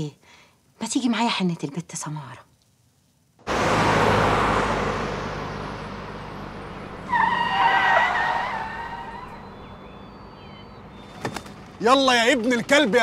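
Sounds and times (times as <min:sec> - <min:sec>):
truck speeding by: 0:03.4 - 0:11.8
tyres screeching: 0:06.2 - 0:11.7.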